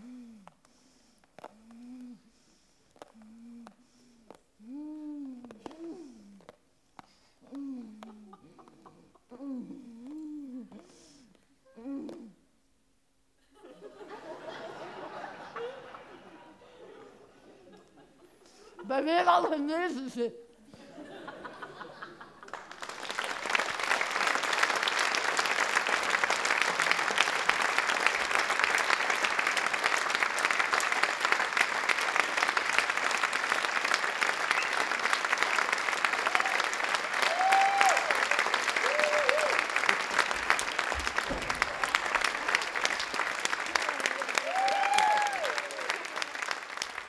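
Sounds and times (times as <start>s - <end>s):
audience clapping: 21.6s - 47.0s.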